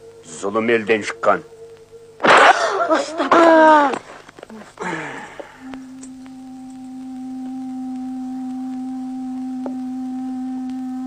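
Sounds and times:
long low woodwind note: 5.1 - 11.0.

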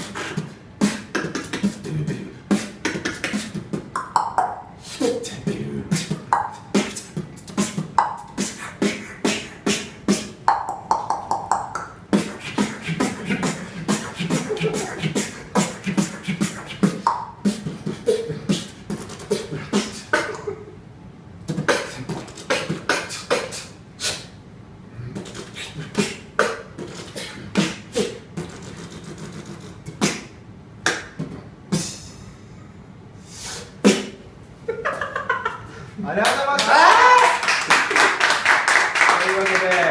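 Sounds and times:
person beatboxing: 0.0 - 20.6, 21.4 - 32.3, 33.3 - 34.3
sharp beatbox hit: 0.0 - 20.6, 21.5 - 24.4, 25.1 - 32.3, 33.3 - 34.3.

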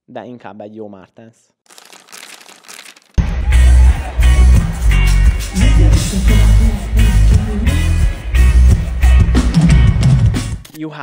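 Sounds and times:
paper tearing: 1.7 - 3.2
loud bass-heavy music: 3.2 - 10.6.

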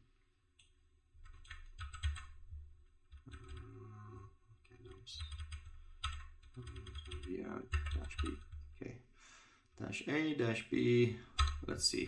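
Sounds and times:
typing on computer keyboard: 1.2 - 2.4, 3.1 - 3.7, 5.2 - 8.8, 11.4 - 11.6.

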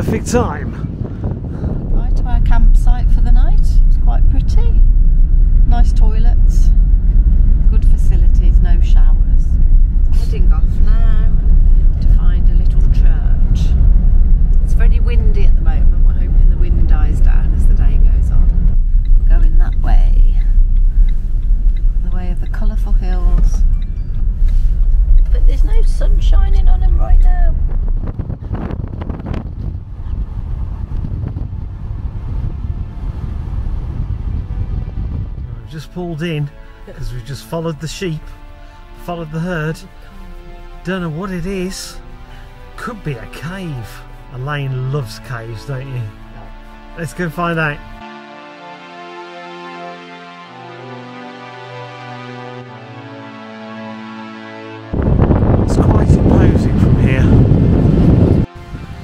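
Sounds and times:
engine and road noise rumble: 0.0 - 48.1, 54.8 - 59.0.

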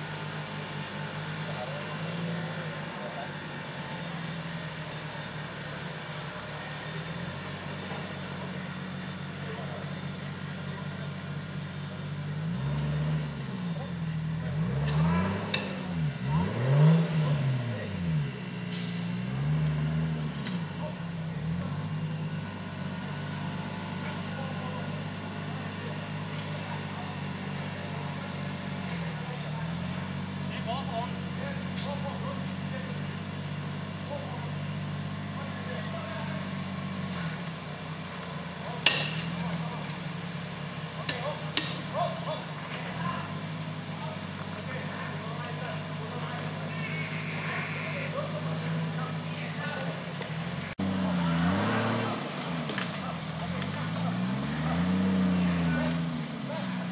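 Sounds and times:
off-road vehicle engine revving: 0.0 - 56.9.

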